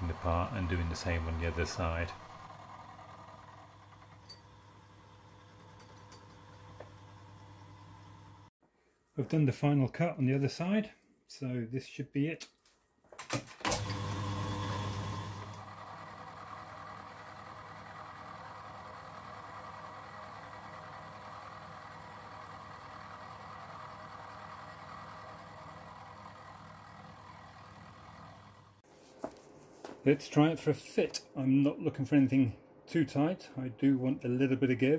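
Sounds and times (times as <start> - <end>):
milling machine spindle humming: 0.0 - 8.5, 13.8 - 28.8.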